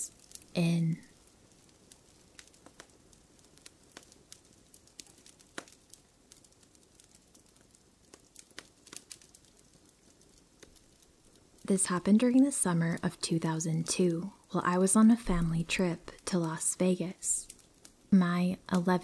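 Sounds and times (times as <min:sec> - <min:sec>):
campfire crackling: 0:00.0 - 0:19.0
low hiss: 0:00.0 - 0:19.0.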